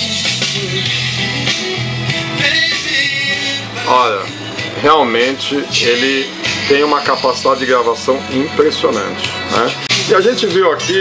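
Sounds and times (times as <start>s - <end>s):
guitar music from a cassette: 0.0s - 11.0s.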